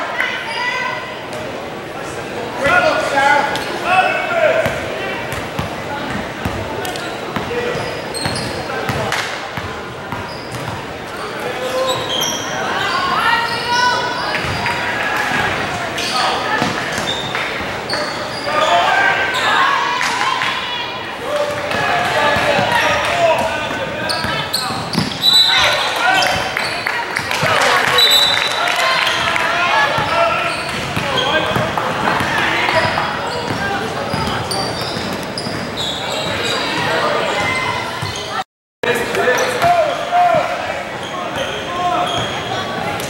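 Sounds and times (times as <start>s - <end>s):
echoing voices: 0.0s - 43.0s.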